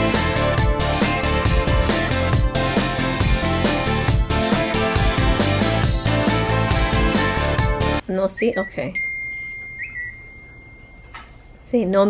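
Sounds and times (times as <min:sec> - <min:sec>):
high whistle-like tone: 0:08.4 - 0:11.5
rising chirp: 0:08.4 - 0:11.5.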